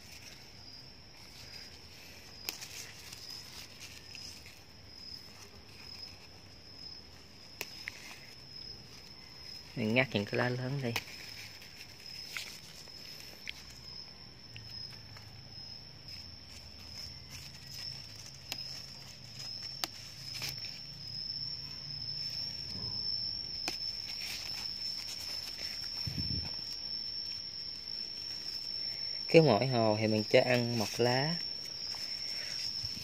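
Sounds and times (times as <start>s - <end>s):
insect trill: 0.0s - 33.0s
leaves snapping and rustling: 0.0s - 33.0s.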